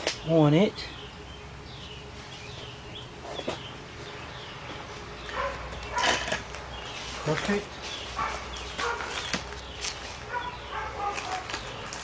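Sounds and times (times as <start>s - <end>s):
steady low hum: 0.0s - 12.0s
animal calls: 10.2s - 12.0s.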